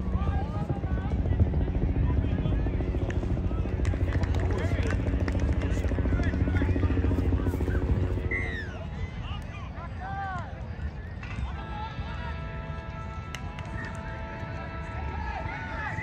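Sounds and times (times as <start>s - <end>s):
low pulsing mechanical drone: 0.0s - 9.2s
outdoor voices: 0.0s - 16.0s.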